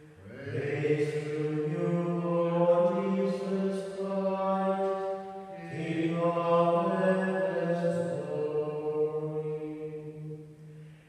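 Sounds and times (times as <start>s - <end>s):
man chanting in long held notes: 0.0s - 10.3s.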